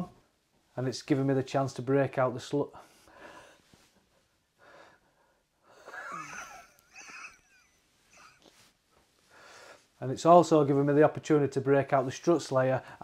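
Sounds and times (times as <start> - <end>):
man laughing quietly: 5.7 - 8.7
squeaky giggle: 5.9 - 8.6.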